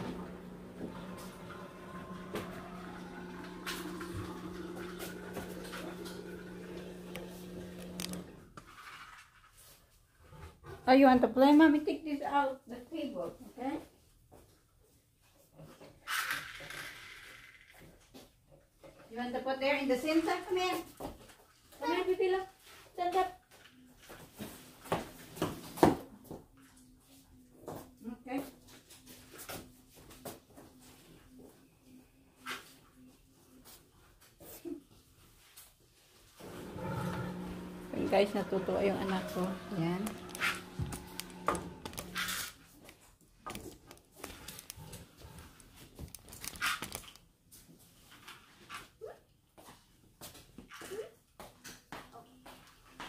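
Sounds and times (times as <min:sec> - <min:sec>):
appliance electrical hum: 0:00.0 - 0:08.6, 0:36.3 - 0:47.1.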